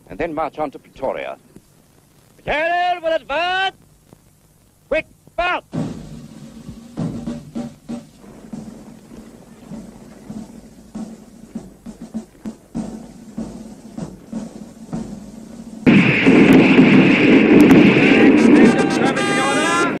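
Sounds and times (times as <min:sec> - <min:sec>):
marching column: 0:04.9 - 0:20.0
music: 0:05.7 - 0:20.0
rifle fire: 0:15.8 - 0:18.7
men shouting: 0:18.1 - 0:20.0.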